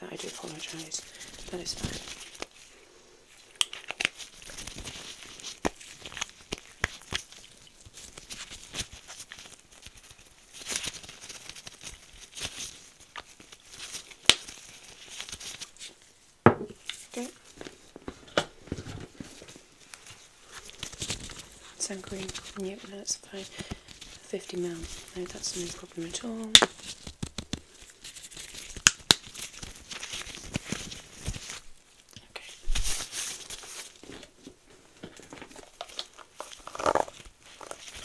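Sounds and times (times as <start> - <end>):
gloved hands crinkling packets: 0.0 - 16.2, 16.8 - 38.0.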